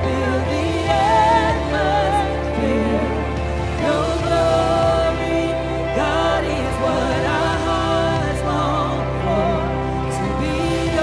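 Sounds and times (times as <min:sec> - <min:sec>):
instrumental backing with bass: 0:00.0 - 0:11.0
person singing with vibrato: 0:00.0 - 0:11.0.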